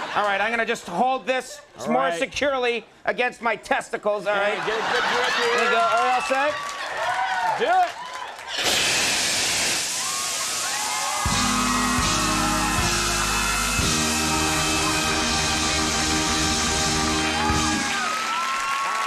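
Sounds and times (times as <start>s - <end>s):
audience cheering: 4.6s - 8.8s, 9.8s - 19.0s
fire extinguisher hissing: 8.5s - 17.9s
loud band music: 11.2s - 18.3s.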